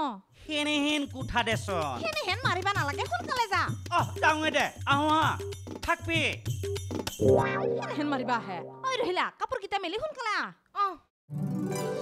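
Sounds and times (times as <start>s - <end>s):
background music with plucked strings: 7.2s - 8.9s, 11.3s - 12.0s
person speaking: 7.5s - 9.2s.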